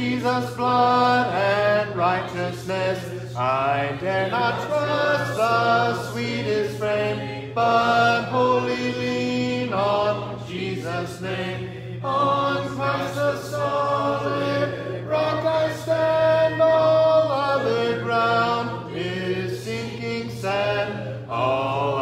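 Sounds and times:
congregation singing a hymn: 0.0 - 22.0.

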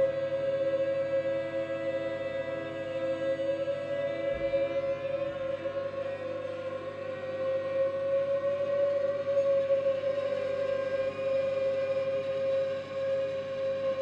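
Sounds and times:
electronic sustained wavering note: 0.0 - 14.0
faint steady tones: 0.0 - 14.0.

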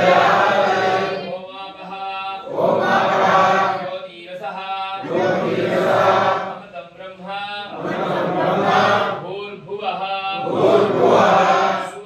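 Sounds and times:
single voice chanting: 0.0 - 3.9
men chanting together: 0.0 - 6.8, 7.7 - 12.0.

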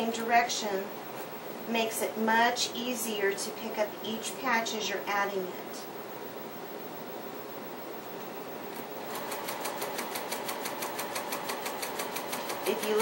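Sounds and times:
sewing machine needle clatter: 9.1 - 13.0.

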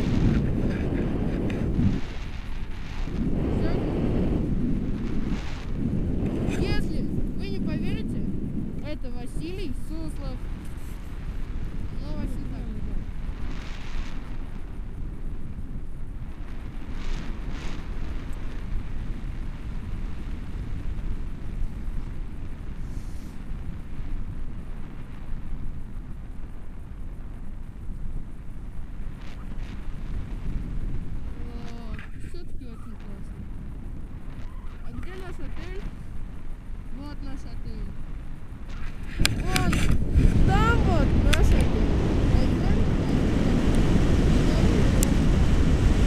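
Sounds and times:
wind buffeting microphone: 0.0 - 46.0
faint words: 31.3 - 33.3.

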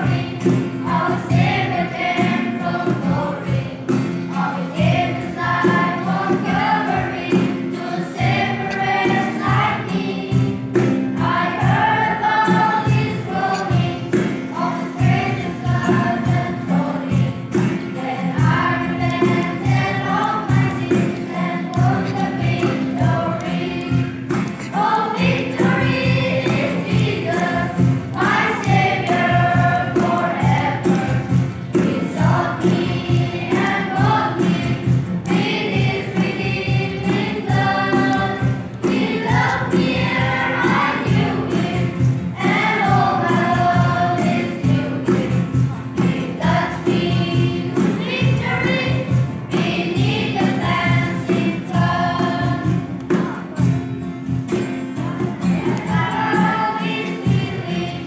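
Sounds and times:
children's choir singing a hymn: 0.0 - 58.0.

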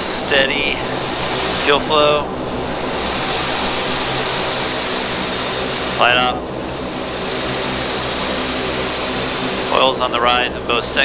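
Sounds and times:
turboprop engine starting: 0.0 - 10.2
faint high whine: 0.0 - 11.0.

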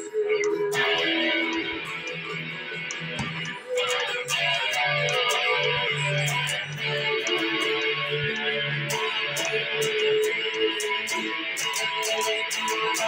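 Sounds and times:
electric guitar strumming chords: 0.0 - 13.0.

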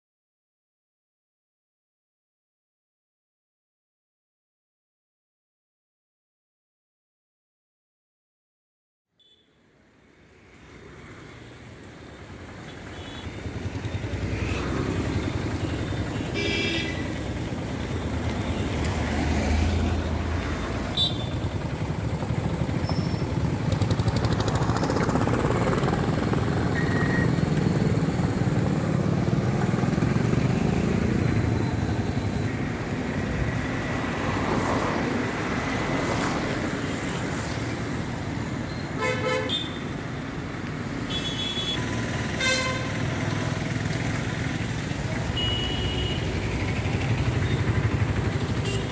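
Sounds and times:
vehicle horn toots: 16.2 - 17.1, 21.0 - 21.5, 39.0 - 39.8, 41.1 - 41.8, 42.4 - 43.0, 45.3 - 46.3, 48.6 - 48.9
vehicles driving through water: 41.6 - 48.9.

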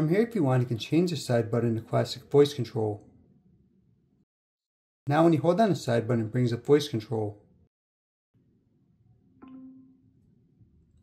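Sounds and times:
phone activation chime: 9.4 - 10.0.

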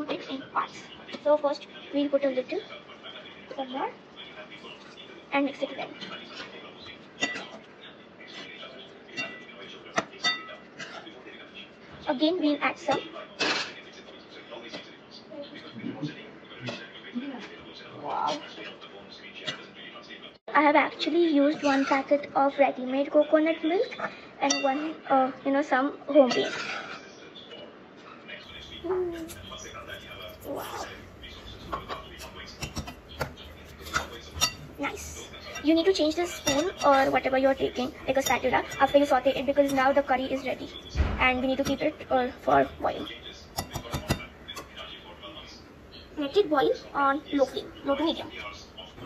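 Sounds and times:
spoon scraping through curry: 28.5 - 40.8, 41.6 - 46.0.

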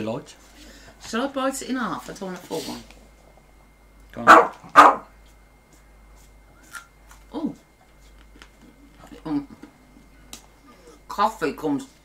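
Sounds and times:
dog barking: 4.2 - 5.1.

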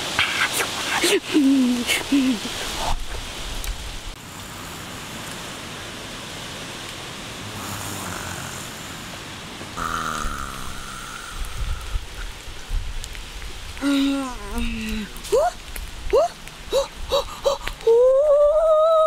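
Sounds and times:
steady hiss: 0.0 - 19.0
boy moaning and humming: 9.8 - 12.2, 13.8 - 19.0
boy's rising ooh calls: 9.8 - 12.2, 15.3 - 19.0.

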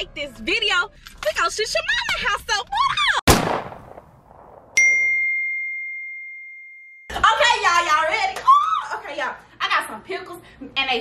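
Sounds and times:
text message notification ding: 4.8 - 6.7.

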